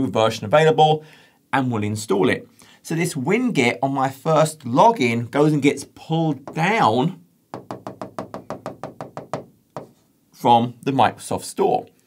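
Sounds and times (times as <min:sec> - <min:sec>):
pen tapping on glass: 0:07.5 - 0:10.0.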